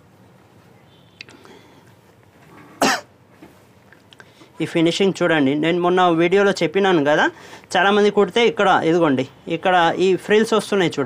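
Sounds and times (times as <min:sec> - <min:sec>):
person coughing: 0:02.8 - 0:03.1.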